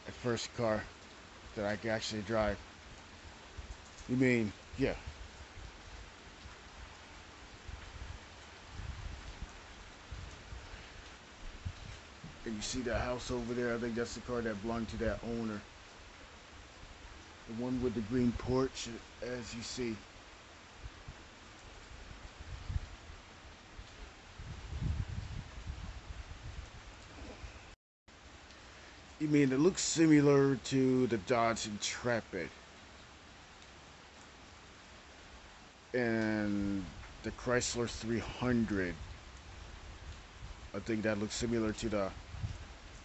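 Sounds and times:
steady rain falling: 0.0s - 43.0s
wind buffeting microphone: 7.6s - 13.4s, 21.9s - 23.2s, 24.3s - 27.6s, 42.0s - 43.0s.

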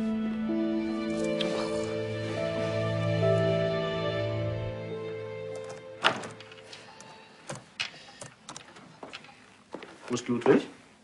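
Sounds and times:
soft background music: 0.0s - 8.7s.

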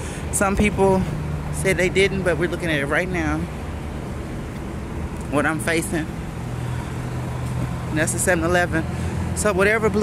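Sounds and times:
bus and car engines humming: 0.0s - 10.0s.

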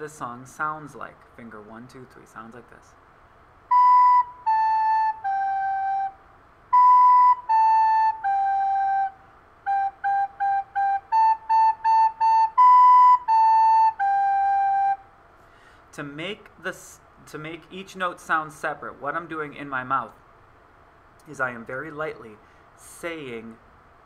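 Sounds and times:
recorder playing simple tune: 3.7s - 15.0s.

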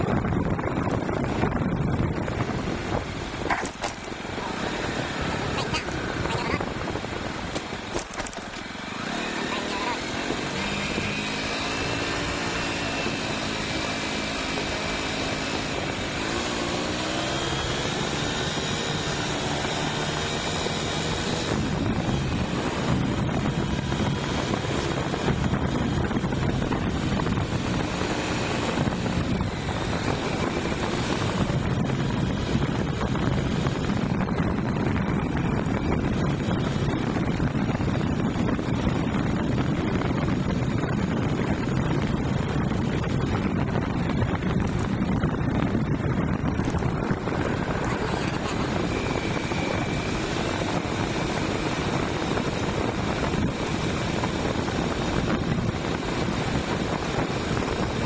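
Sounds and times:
motorcycle engine running: 0.0s - 58.0s
wind rushing noise: 0.0s - 58.0s.

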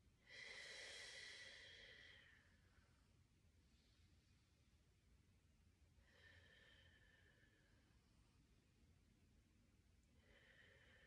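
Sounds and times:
woman breathing slowly: 0.1s - 4.6s, 6.0s - 8.4s, 10.0s - 11.0s.

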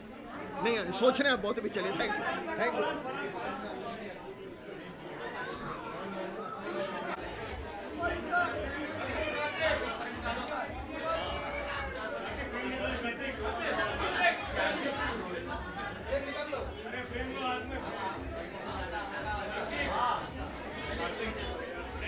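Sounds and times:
chatter of many voices: 0.0s - 22.0s.

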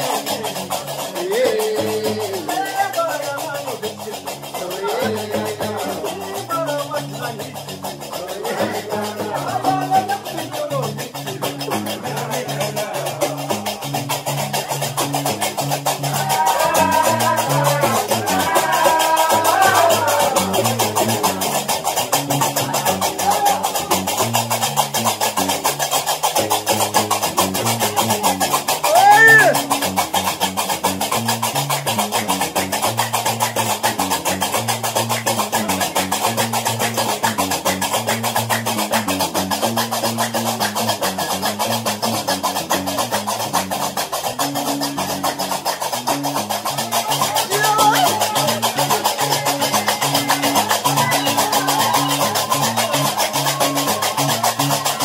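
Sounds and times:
group singing: 0.0s - 24.6s, 46.6s - 55.0s
guembri bass riff: 0.0s - 55.0s
metal castanets clattering: 0.0s - 55.0s
rising-and-falling cry: 16.0s - 21.3s, 28.8s - 29.6s.

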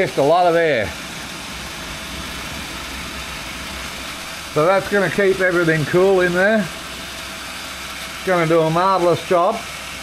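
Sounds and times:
blower fans rushing air: 0.0s - 10.0s
low hum: 0.9s - 8.5s.

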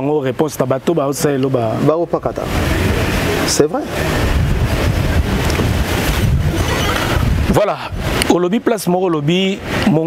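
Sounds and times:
wind buffeting microphone: 1.4s - 10.0s.

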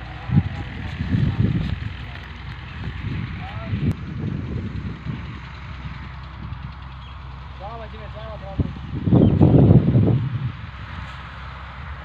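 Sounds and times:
tractor diesel engine idling: 0.0s - 12.0s.

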